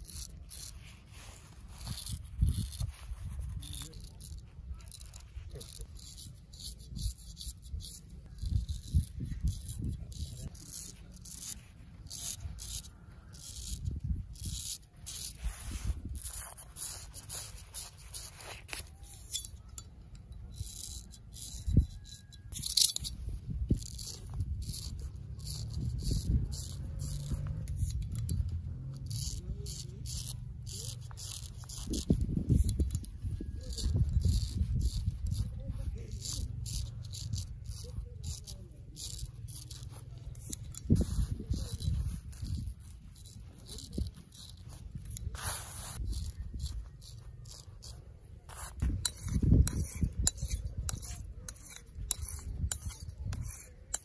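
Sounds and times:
razor scraping stubble: 0.0s - 54.0s.

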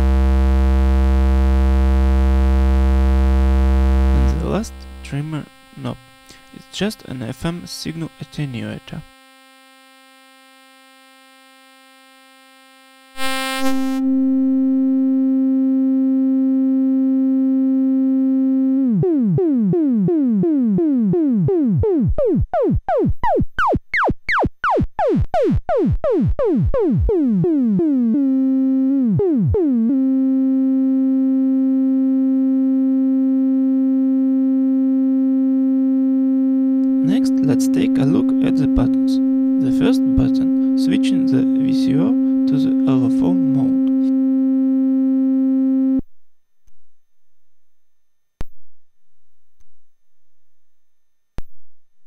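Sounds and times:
buzzy synthesizer tone: 0.0s - 46.0s.

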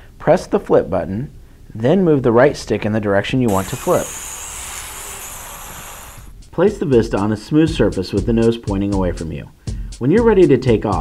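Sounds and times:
quadcopter propellers whirring: 3.5s - 6.3s.

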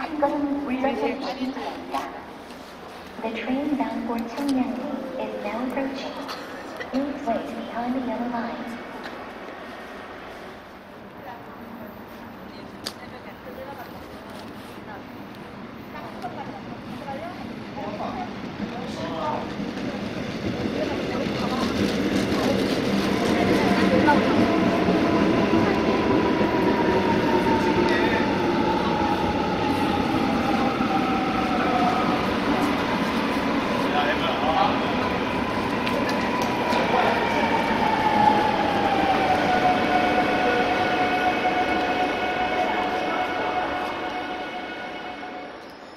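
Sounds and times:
train wheels rumbling on rails: 0.0s - 45.9s.

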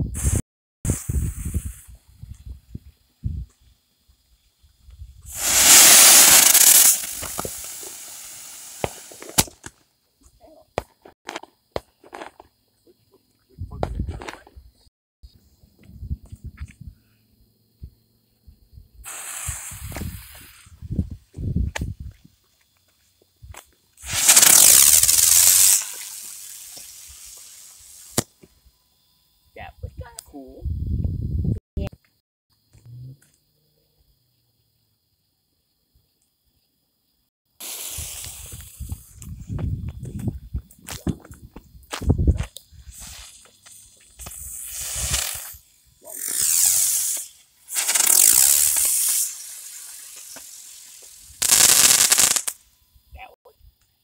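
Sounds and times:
fireworks hissing bursts: 0.0s - 2.4s, 3.5s - 9.7s, 19.0s - 22.0s, 23.4s - 28.5s, 37.6s - 41.0s, 42.4s - 53.3s
fireworks bangs: 5.3s - 9.7s, 24.0s - 28.3s, 46.2s - 52.6s.

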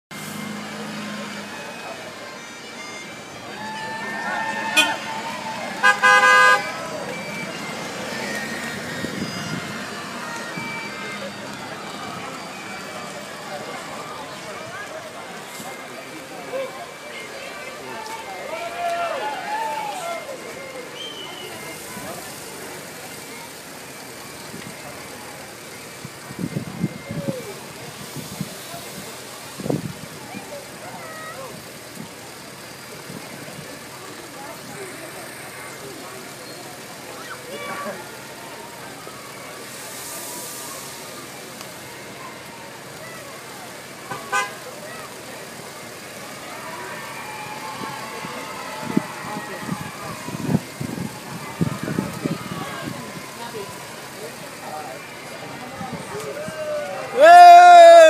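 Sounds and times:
crowd talking: 0.0s - 58.0s
vehicle horn blast: 2.4s - 10.0s, 44.1s - 44.6s.

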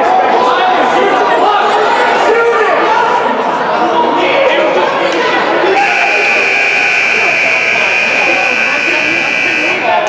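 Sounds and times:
crowd chatter: 0.0s - 10.0s
scoreboard buzzer long tone: 5.7s - 10.0s.

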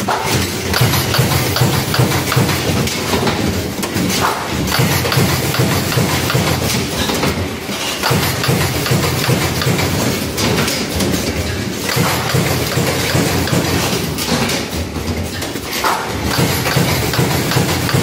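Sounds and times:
dense clatter of clicks: 0.1s - 18.0s.

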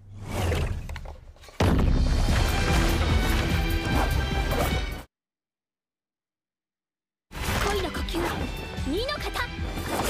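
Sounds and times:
battle soundtrack music: 2.0s - 5.1s.

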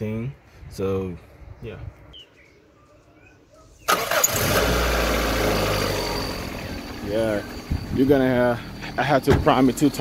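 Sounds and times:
car engine starting and running: 3.9s - 10.0s.

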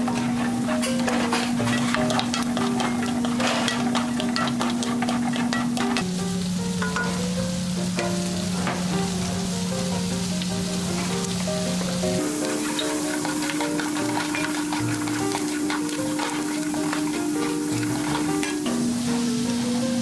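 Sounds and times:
spatula scraping a pan: 0.0s - 6.1s, 12.0s - 19.7s
vegetables sizzling in a wok: 0.0s - 20.0s.

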